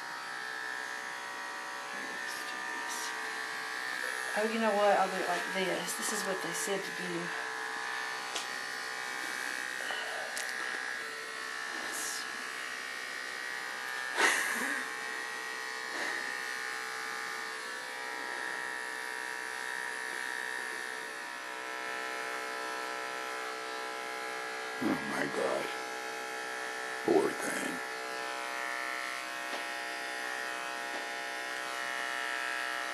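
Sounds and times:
electric pet clippers humming: 0.0 - 32.9.

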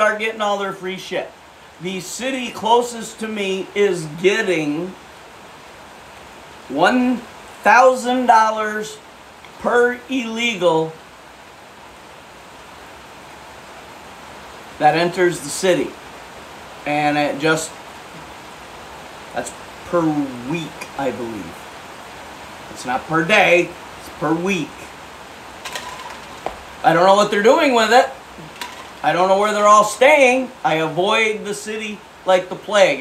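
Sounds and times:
man talking: 0.0 - 5.0, 6.7 - 9.0, 9.6 - 11.0, 14.8 - 16.0, 16.8 - 17.8, 19.4 - 21.6, 22.7 - 24.9, 26.8 - 33.0
steady background hiss: 0.0 - 33.0.

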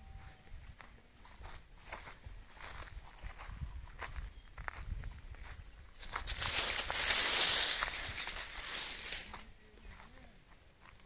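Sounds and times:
footsteps on dry ground: 0.0 - 11.0.

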